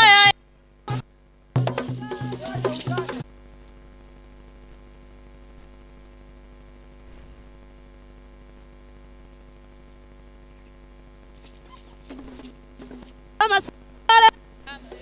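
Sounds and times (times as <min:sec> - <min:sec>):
electrical mains hum: 0:00.0 - 0:15.0.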